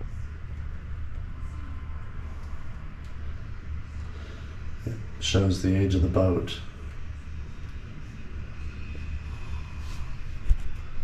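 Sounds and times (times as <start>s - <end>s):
low mechanical hum: 0.0s - 11.0s
thin high whine: 0.0s - 11.0s.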